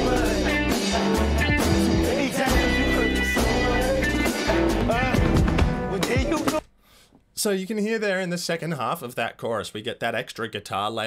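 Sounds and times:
rock band playing: 0.0 - 6.6
person singing: 0.0 - 6.7.

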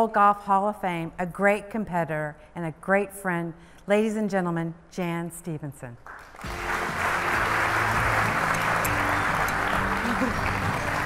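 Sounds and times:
audience applauding: 6.1 - 11.0
music playing: 6.4 - 11.0.

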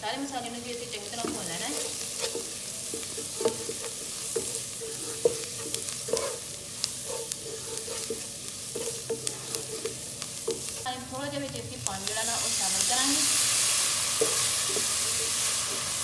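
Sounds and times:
onions sizzling in a pan: 0.0 - 16.0
spatula knocking and scraping pan: 1.1 - 10.8, 14.1 - 15.9.

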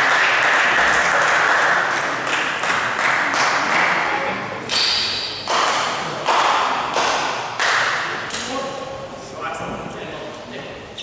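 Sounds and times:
table tennis balls being hit: 4.7 - 8.5.

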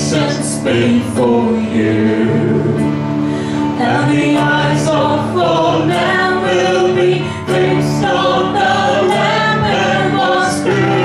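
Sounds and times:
voices singing a praise song: 0.0 - 2.8, 3.8 - 11.0.

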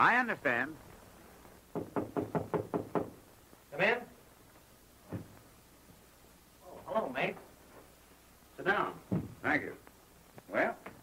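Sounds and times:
knocking on wooden door: 1.7 - 3.2, 9.1 - 9.4.

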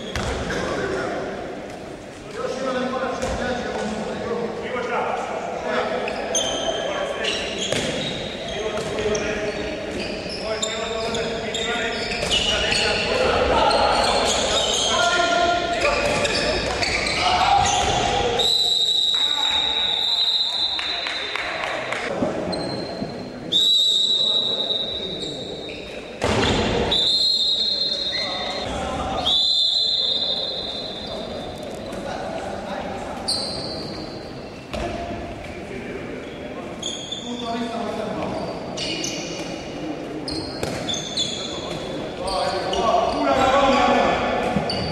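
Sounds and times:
ball bouncing on wooden court: 0.1 - 0.6, 3.2 - 3.4, 7.6 - 8.2, 40.5 - 40.9
players shouting: 11.9 - 22.1.

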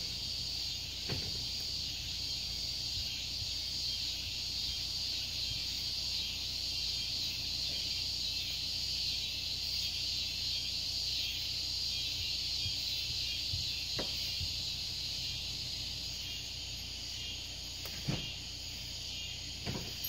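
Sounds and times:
insects high-pitched drone: 0.0 - 20.0.

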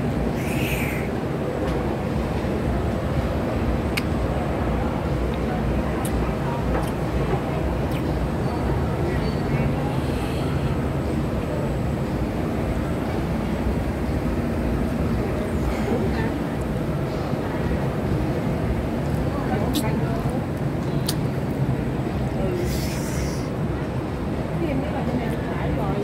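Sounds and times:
distant voices murmuring: 0.0 - 26.0
low rumble of ventilation: 0.0 - 26.0.

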